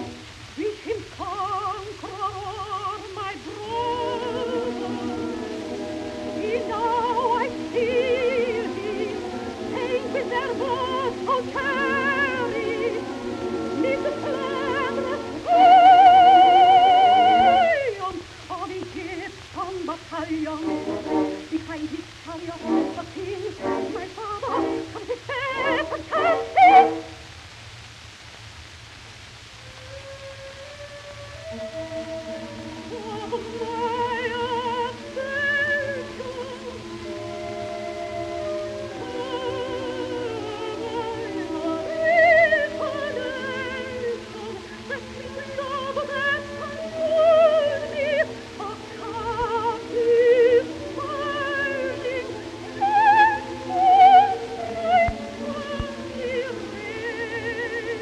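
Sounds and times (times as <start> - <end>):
operatic soprano singing: 0.0 - 27.2, 29.8 - 58.0
orchestra: 0.0 - 27.3, 29.6 - 58.0
record surface hiss: 0.0 - 58.0.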